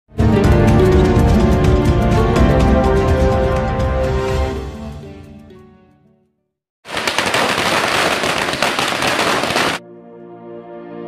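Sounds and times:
music: 0.1 - 6.6, 9.8 - 11.0
loud dense crackling: 6.9 - 9.8.

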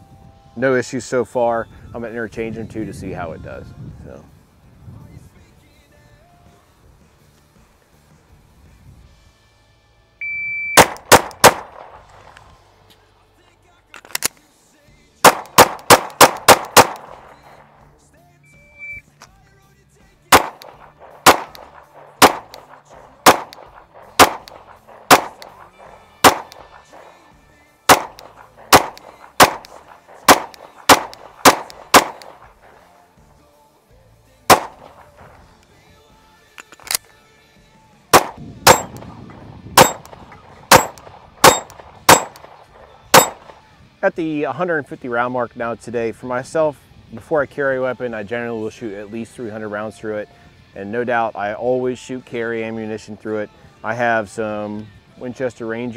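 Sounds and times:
pistol shots: 10.8 - 12.4, 15.2 - 17.8, 20.3 - 27.3, 27.9 - 32.9, 34.5 - 35.5, 38.1 - 39.2, 39.8 - 43.6.

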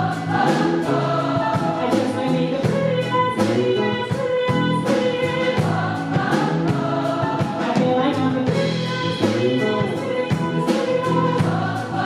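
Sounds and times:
drums and cymbals: 0.0 - 12.0
electric bass: 0.0 - 12.0
grand piano: 0.0 - 12.0
woman singing into a microphone: 0.0 - 12.0.

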